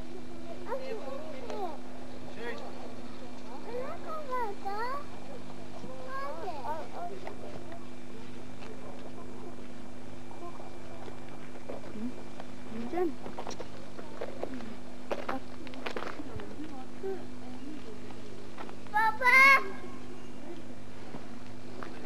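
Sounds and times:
distant voices: 0.0s - 22.0s
steady low hum: 0.0s - 22.0s.

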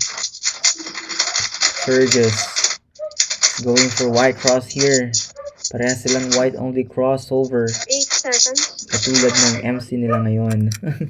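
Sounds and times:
puzzle cube clicking and scraping: 0.0s - 6.6s, 7.4s - 9.8s.

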